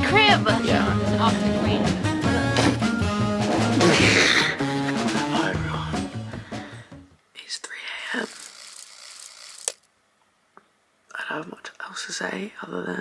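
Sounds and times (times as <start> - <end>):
background music: 0.0 - 7.2
woman whispering: 7.3 - 8.3.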